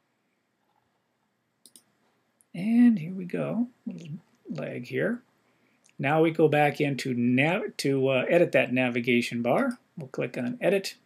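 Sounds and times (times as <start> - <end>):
computer mouse clicks: 1.6 - 1.9.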